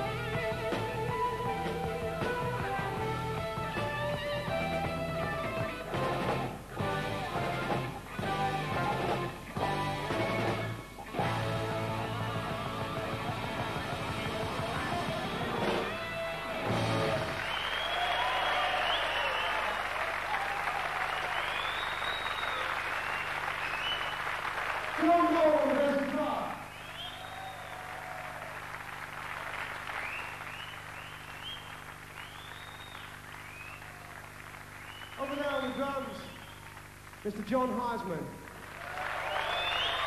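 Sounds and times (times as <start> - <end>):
live rock band playing: 0.0 - 17.5
audience applauding: 14.2 - 40.0.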